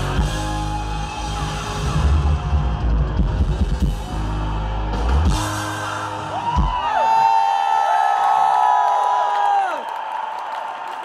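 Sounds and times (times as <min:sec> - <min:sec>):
live rock band: 0:00.0 - 0:07.3
drum kit hitting hard: 0:04.9 - 0:06.9.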